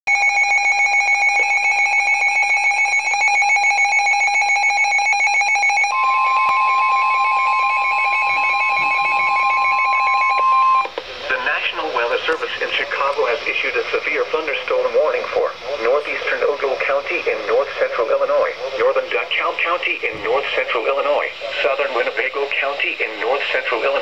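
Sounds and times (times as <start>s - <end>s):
rapid two-tone alarm beeping: 0.1s - 24.0s
steady warning alarm tone: 0.1s - 24.0s
broadcast voice speaking: 11.0s - 24.0s.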